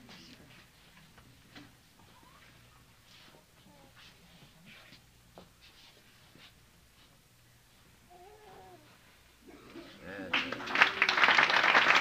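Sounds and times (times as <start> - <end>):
audience clapping: 10.3 - 12.0.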